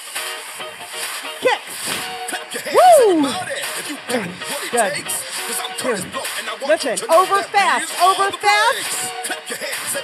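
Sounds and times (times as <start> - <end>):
upbeat workout music: 0.0 - 10.0
woman calling out: 1.4 - 1.6, 2.8 - 3.4, 7.1 - 8.8.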